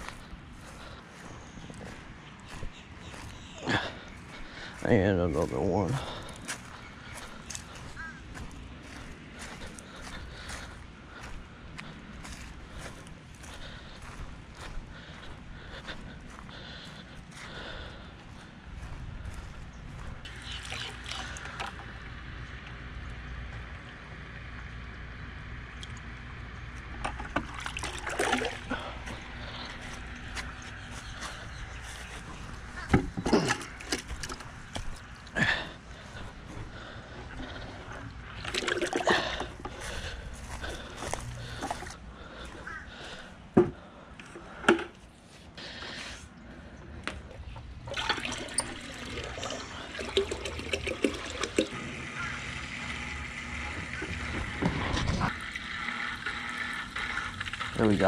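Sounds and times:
water splashing in a bucket: 20.3s - 21.9s, 27.1s - 29.8s, 38.3s - 40.5s, 47.9s - 58.0s
aquarium filter pouring water: 20.3s - 22.0s, 27.1s - 29.0s, 38.4s - 39.5s, 47.9s - 58.0s.

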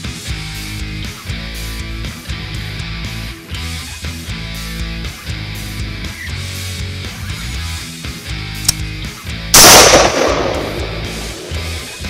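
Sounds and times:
rifle shot: 9.6s - 12.0s.

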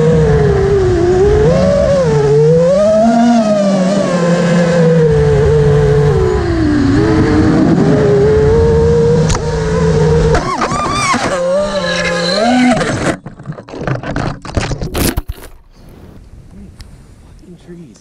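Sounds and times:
drone motors and propellers whining: 0.0s - 14.3s.

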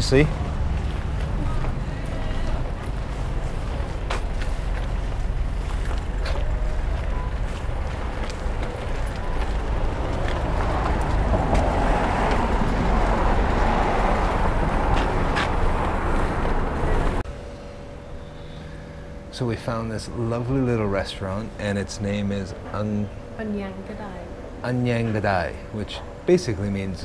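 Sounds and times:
vehicle passing on road: 0.0s - 17.2s
steady low rumble: 0.0s - 20.2s
faint steady hum: 15.8s - 27.0s.

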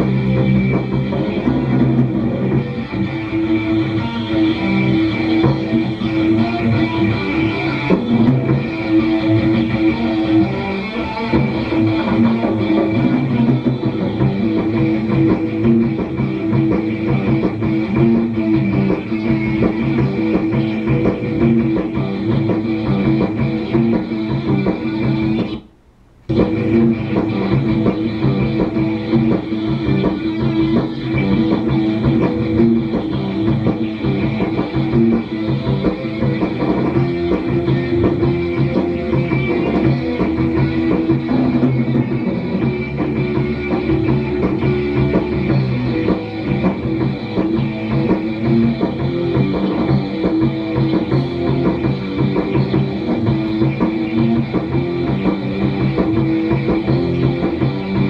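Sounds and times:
rock band playing live: 0.0s - 25.6s, 26.3s - 58.0s.

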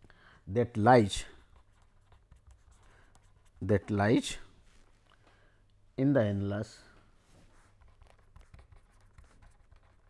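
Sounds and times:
pen scratching on paper: 1.4s - 4.0s, 7.6s - 10.0s.

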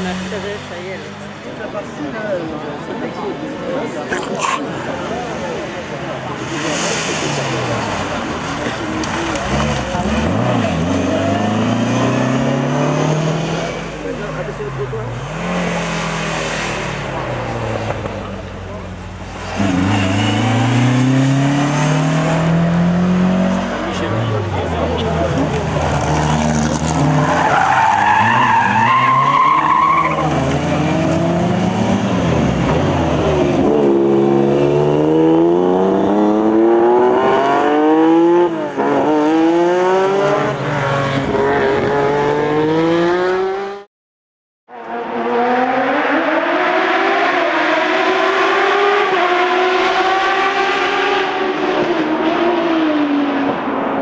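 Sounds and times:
rally car engines revving high: 3.4s - 43.9s, 44.7s - 54.0s.

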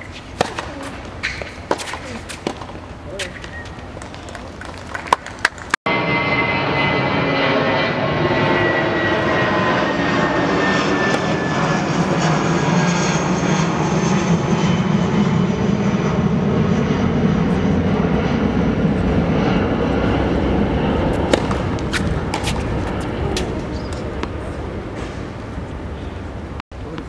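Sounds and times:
jet airliner passing overhead: 5.9s - 26.6s.

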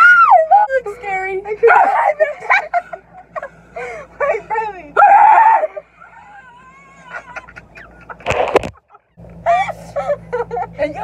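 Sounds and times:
women's hysterical laughter: 1.7s - 4.2s, 5.0s - 11.0s.

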